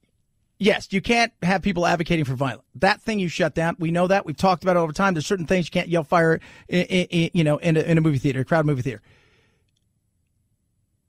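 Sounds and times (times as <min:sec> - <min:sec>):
faint breath: 0:06.4 - 0:06.7, 0:09.0 - 0:09.7.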